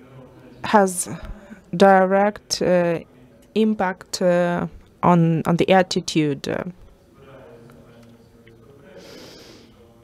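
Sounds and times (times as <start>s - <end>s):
faint room hum: 0.0s - 10.0s
soft breath into microphone: 8.9s - 9.8s.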